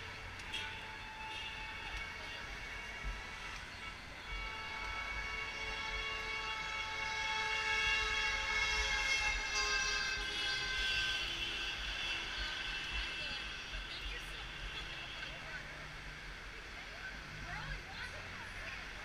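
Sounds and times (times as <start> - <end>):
sustained multi-tone vehicle horn: 0.0 - 15.6.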